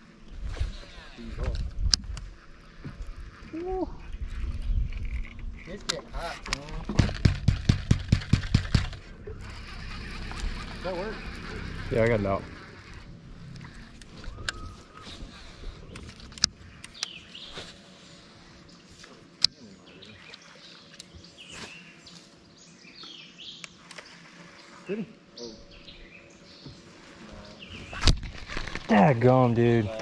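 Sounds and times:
birds chirping: 8.5 - 30.0
sharp clicks: 15.9 - 17.2.

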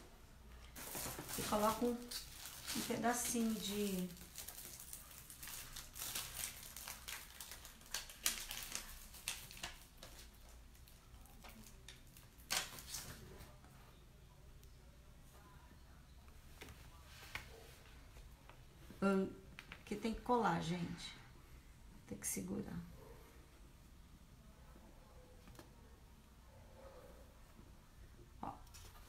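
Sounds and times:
packaging and paper crinkling: 0.7 - 13.2.

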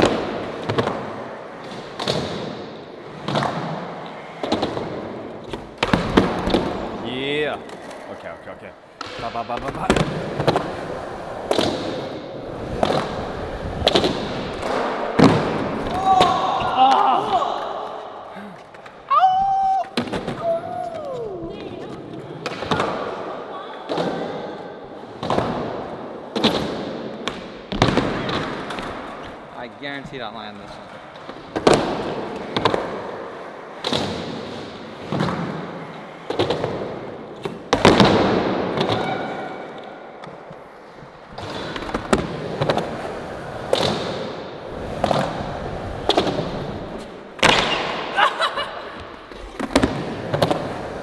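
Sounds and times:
skateboard wheels rolling on concrete: 0.0 - 51.0
person yelling: 15.9 - 17.9, 19.1 - 21.8.

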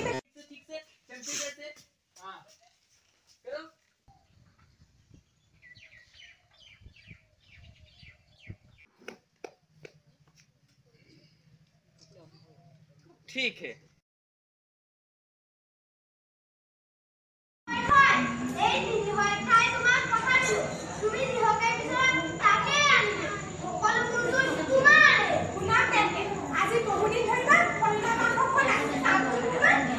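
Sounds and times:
faint bird chirping: 4.1 - 8.9.

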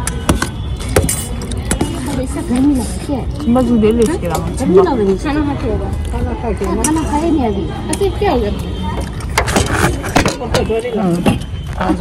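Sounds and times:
people talking: 1.0 - 12.0.

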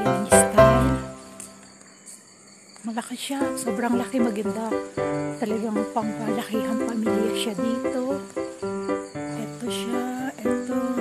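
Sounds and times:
background music: 0.0 - 1.6, 3.4 - 11.0
person speaking: 0.0 - 1.6, 2.9 - 8.3, 9.3 - 11.0
crickets chirping: 0.0 - 11.0.

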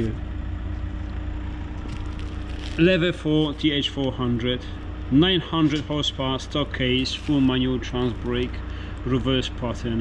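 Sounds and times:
faint constant hum: 0.0 - 10.0
low background rumble: 0.0 - 10.0.

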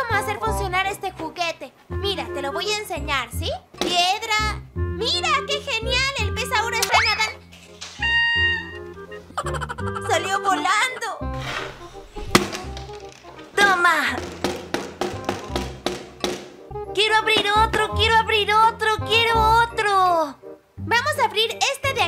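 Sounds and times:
children's music: 0.0 - 22.0.

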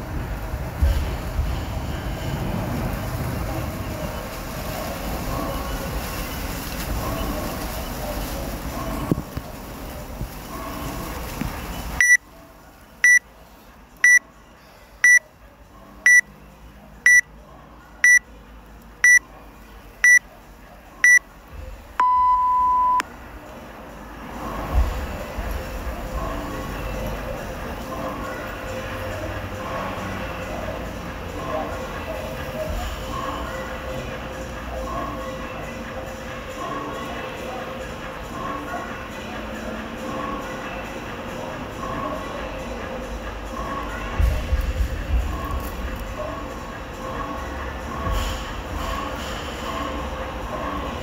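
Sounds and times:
outdoor background noise: 0.0 - 51.0
long low beep: 12.0 - 12.2, 13.0 - 13.2, 18.0 - 18.2, 19.0 - 19.2, 22.0 - 23.0
short high beeps: 12.0 - 12.2, 13.0 - 13.2, 18.0 - 18.2, 19.0 - 19.2, 22.0 - 23.0.

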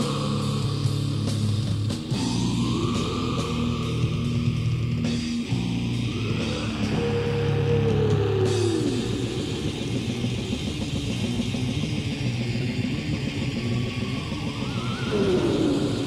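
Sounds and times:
distorted electric guitars: 0.0 - 16.0.

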